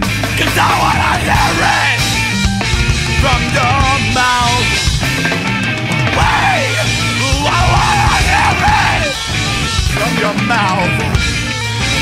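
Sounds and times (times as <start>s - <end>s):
loud rock song: 0.0s - 12.0s
person yelling vocals: 0.4s - 2.0s, 6.1s - 9.2s.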